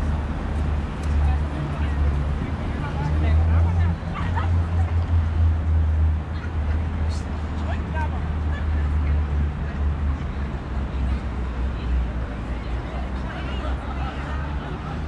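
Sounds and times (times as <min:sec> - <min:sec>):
faint voices of passers-by: 0:00.0 - 0:15.0.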